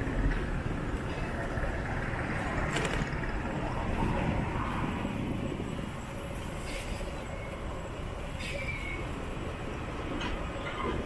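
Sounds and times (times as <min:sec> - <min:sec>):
low rumble of vehicle noise: 0:00.0 - 0:11.0.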